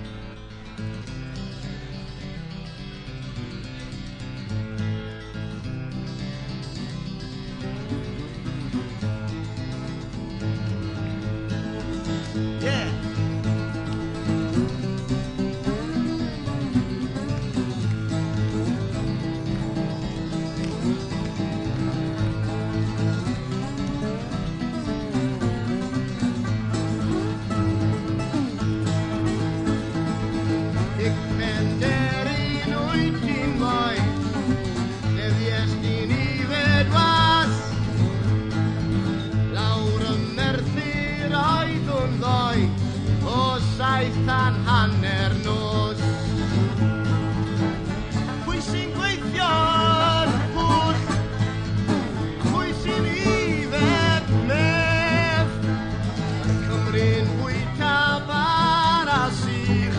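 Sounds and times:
acoustic folk guitar music: 0.0s - 59.9s.

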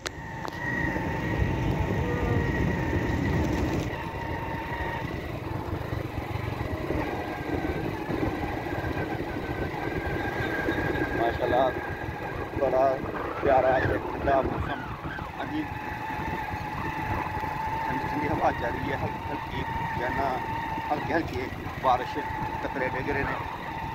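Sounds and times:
motorcycle engine running: 0.0s - 23.9s
wind buffeting microphone: 0.0s - 23.9s.

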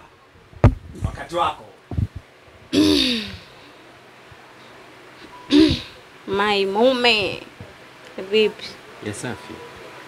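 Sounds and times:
person coughing: 2.8s - 3.4s, 5.5s - 5.9s.

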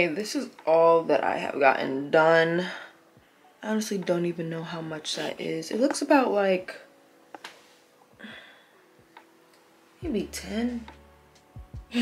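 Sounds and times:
soft rustle: 7.4s - 8.0s.

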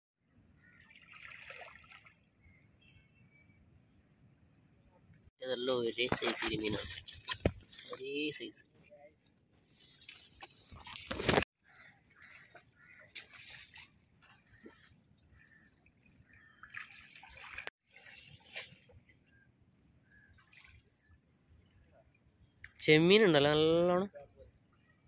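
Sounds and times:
water sloshing and splashing: 0.8s - 2.3s, 6.0s - 8.2s, 12.1s - 21.6s.

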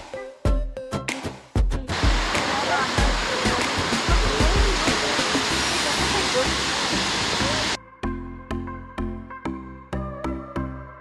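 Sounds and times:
waterfall rushing: 1.9s - 7.8s.

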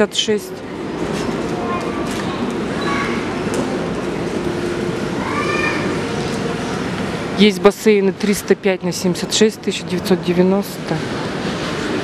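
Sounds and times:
store crowd hubbub: 0.0s - 12.0s.

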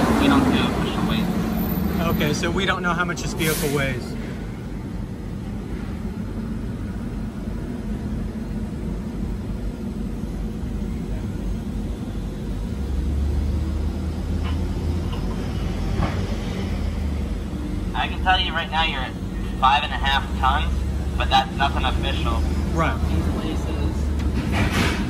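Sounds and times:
heavy vehicle idling: 0.0s - 25.0s.

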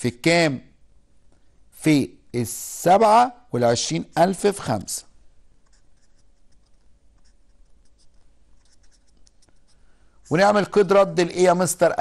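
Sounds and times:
marker scratching on paper: 5.6s - 11.0s.

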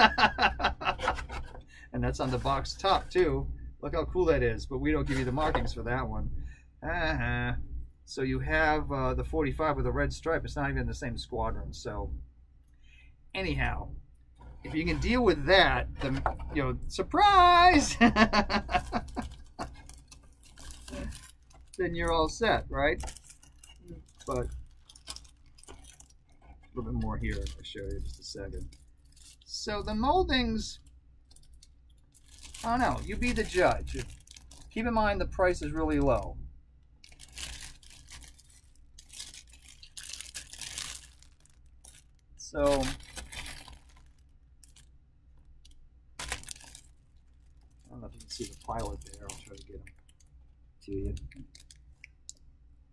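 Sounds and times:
plastic bag rustling: 2.2s - 3.2s, 18.1s - 29.6s, 31.3s - 34.8s, 37.0s - 44.9s, 46.2s - 50.2s.

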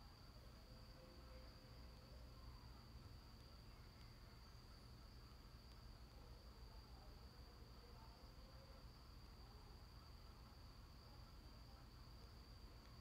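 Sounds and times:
faint high-pitched whine: 0.0s - 13.0s.

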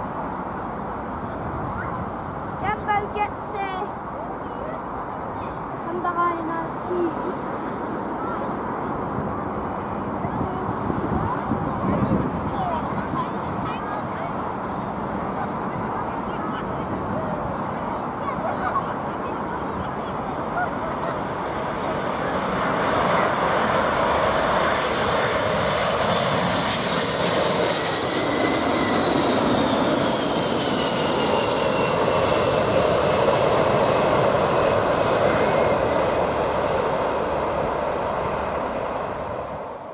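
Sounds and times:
jet airliner passing overhead: 0.0s - 39.9s.

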